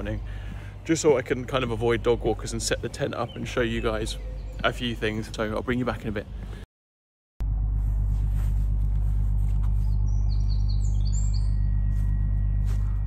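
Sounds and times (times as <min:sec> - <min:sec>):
low rumble with a hum: 0:00.0 - 0:06.7, 0:07.4 - 0:13.0
small bird chirping: 0:09.8 - 0:12.0.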